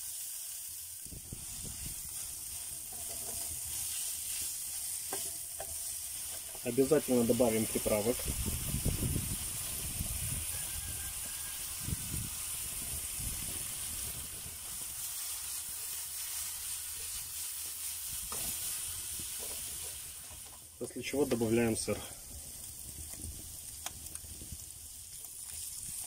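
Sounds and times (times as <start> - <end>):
meat sizzling in a frying pan: 0.0 - 26.0.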